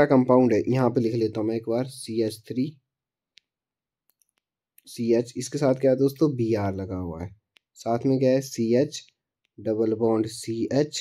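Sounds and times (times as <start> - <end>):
stylus tapping on screen: 3.2 - 11.0.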